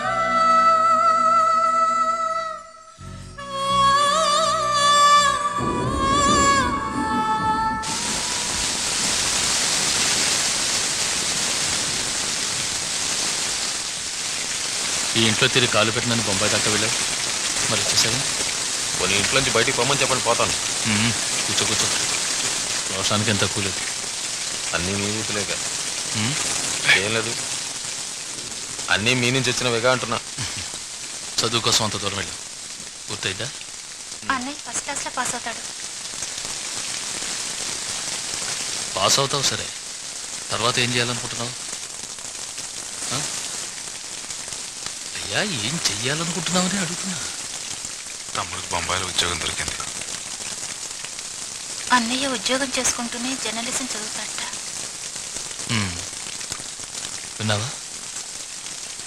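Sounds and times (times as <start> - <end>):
heavy rain splashing on pavement: 7.6 - 59.0.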